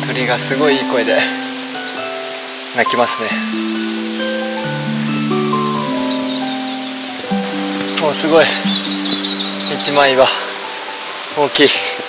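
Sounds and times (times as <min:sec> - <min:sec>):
background music with held notes: 0:00.0 - 0:12.0
songbird singing: 0:00.0 - 0:12.0.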